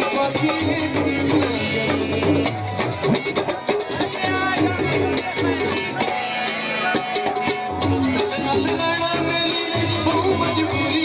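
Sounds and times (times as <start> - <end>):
harmonium chords: 0.0 - 11.0
tabla strokes: 0.0 - 11.0.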